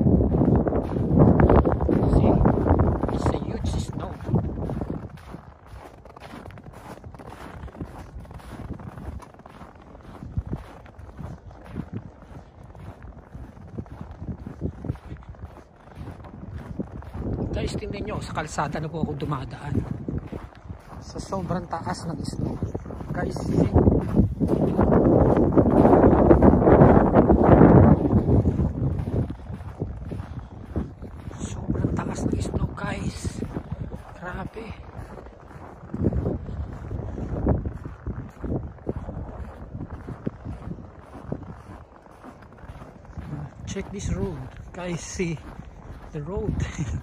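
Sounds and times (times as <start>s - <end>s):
footsteps through deep snow: 0.0s - 47.0s
wind rumble on microphone: 0.0s - 47.0s.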